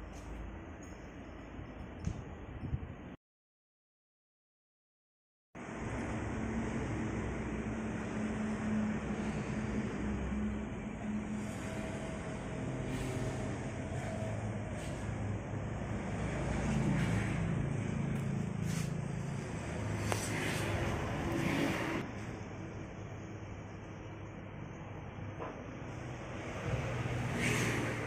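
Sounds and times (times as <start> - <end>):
low rumble of vehicle noise: 0.0 - 3.2, 5.6 - 28.0.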